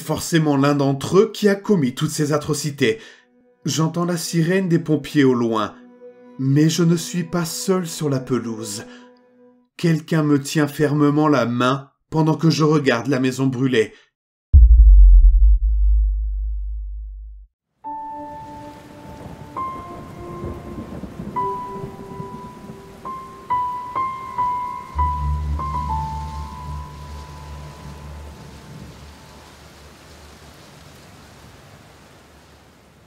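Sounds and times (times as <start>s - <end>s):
deep sub-bass boom: 14.6s - 17.5s
rain-like hiss: 18.0s - 33.0s
low held music notes: 24.2s - 29.3s.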